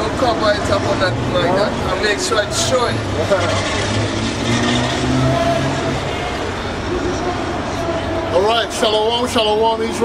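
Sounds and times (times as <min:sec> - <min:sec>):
people's voices: 0:00.0 - 0:10.0
traffic engine drone: 0:00.0 - 0:10.0.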